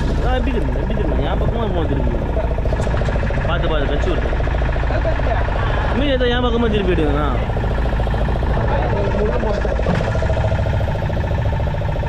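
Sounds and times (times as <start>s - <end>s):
boat engine rumbling with droning whine: 0.0s - 12.0s.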